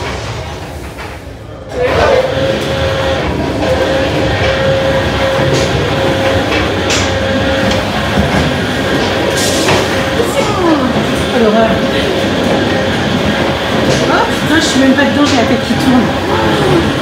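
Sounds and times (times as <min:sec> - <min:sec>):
rotating drum rumbling: 0:00.0 - 0:17.0.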